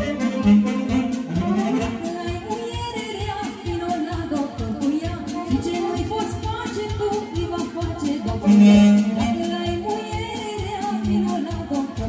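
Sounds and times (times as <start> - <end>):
fast drum beat: 0.0 - 12.0
woman singing: 1.0 - 12.0.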